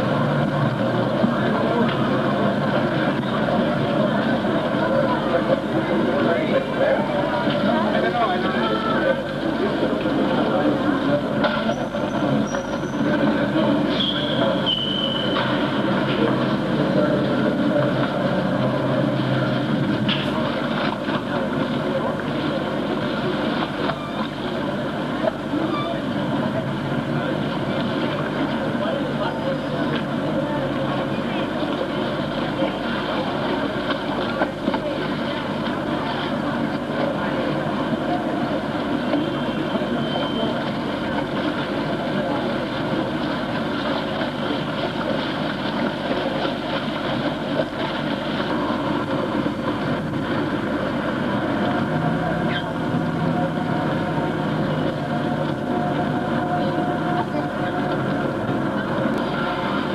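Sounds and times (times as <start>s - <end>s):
crowd voices: 0.0s - 59.9s
traffic noise: 0.0s - 59.9s.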